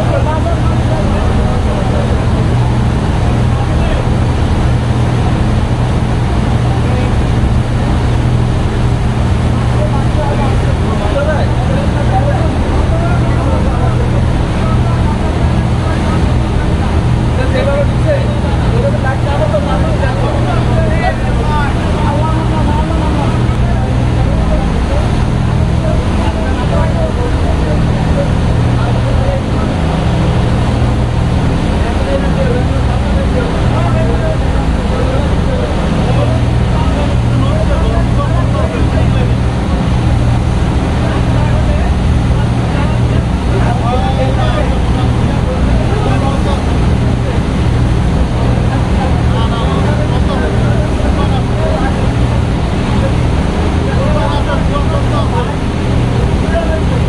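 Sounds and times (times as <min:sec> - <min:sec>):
boat engines droning: 0:00.0 - 0:57.0
rushing propeller wake: 0:00.0 - 0:57.0
voices: 0:00.0 - 0:57.0.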